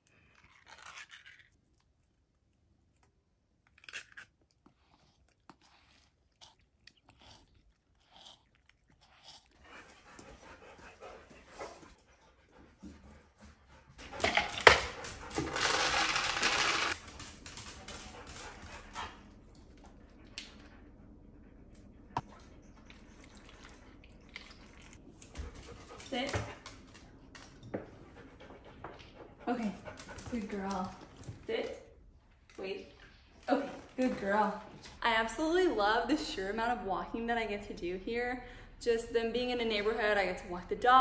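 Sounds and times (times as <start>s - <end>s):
kibble rattling into metal bowl: 15.5s - 17.0s.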